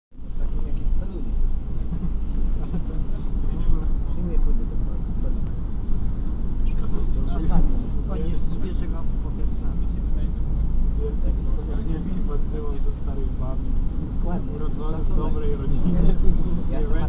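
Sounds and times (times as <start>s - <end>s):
bus engine and road rumble: 0.1s - 17.0s.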